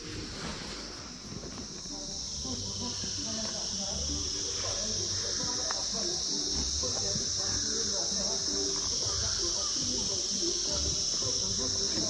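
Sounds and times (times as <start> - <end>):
faint voices: 0.0 - 12.0
high-pitched insect chorus: 0.0 - 12.0.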